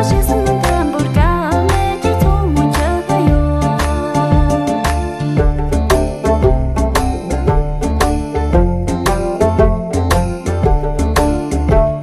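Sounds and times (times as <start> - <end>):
woman singing pop song: 0.0 - 5.3
steady beat and bass line: 0.0 - 12.0.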